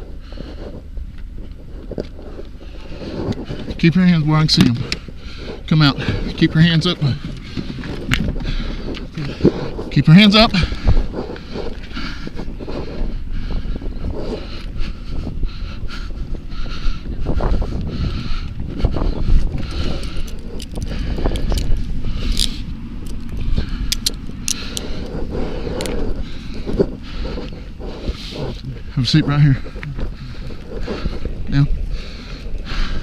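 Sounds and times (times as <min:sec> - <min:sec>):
clothing rubbing on microphone: 0:00.0 - 0:15.4, 0:24.6 - 0:32.2.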